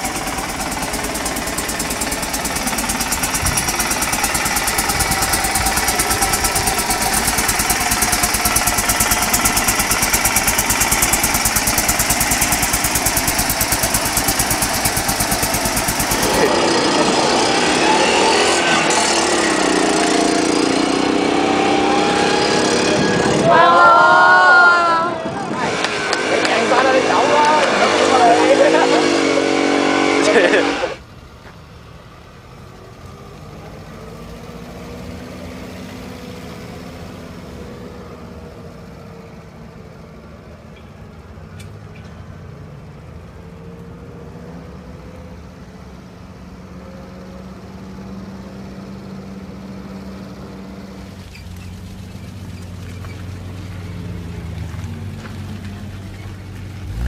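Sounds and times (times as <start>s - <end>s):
truck engine low hum: 0.0s - 57.0s
people talking loudly: 23.0s - 31.0s.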